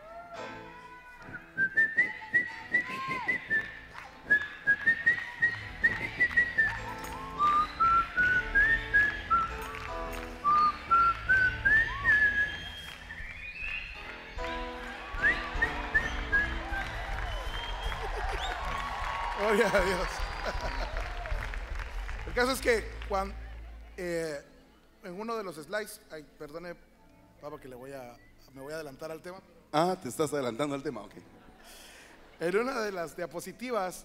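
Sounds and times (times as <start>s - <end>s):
man whistling a melody: 1.3s - 14.0s, 15.2s - 18.6s
bass: 4.7s - 17.9s
keyboard chords: 5.5s - 18.7s.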